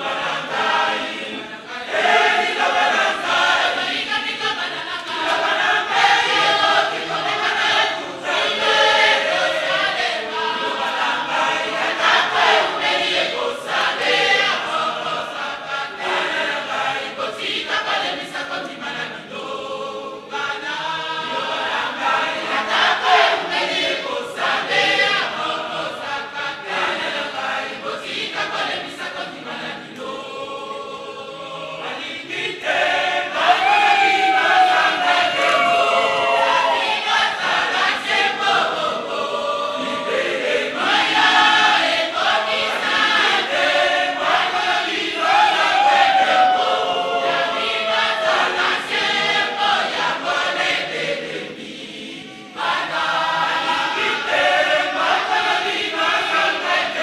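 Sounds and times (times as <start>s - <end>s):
women's choir singing: 0.0s - 57.0s.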